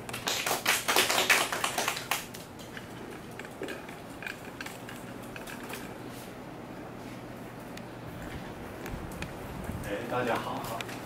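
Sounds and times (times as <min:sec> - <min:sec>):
small group clapping: 0:00.0 - 0:02.6.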